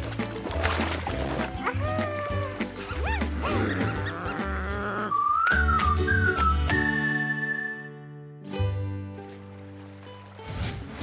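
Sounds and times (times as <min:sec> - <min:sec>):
playful cartoon music: 0:00.0 - 0:09.3
squeaky sound effects: 0:02.9 - 0:04.8.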